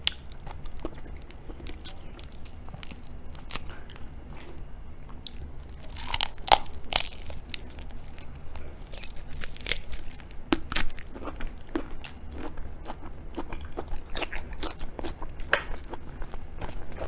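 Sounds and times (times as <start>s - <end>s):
wet chewing: 0.0s - 17.0s
prawn shell crackling: 5.3s - 11.0s.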